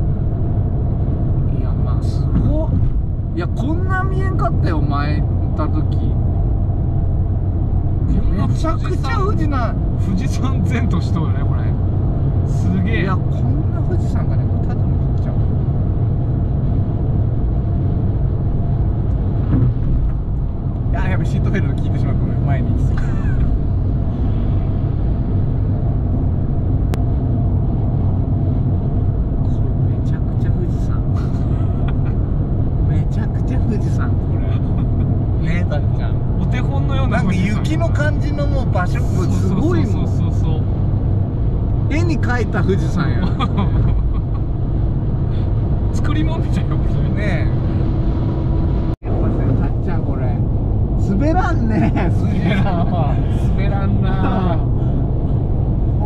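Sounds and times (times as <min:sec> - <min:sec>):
car engine and tyre drone: 0:00.0 - 0:56.0.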